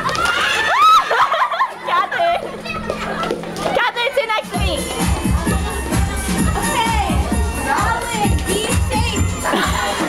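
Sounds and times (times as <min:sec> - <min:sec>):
children shouting and laughing: 0:00.0 - 0:10.0
music playing: 0:02.6 - 0:10.0.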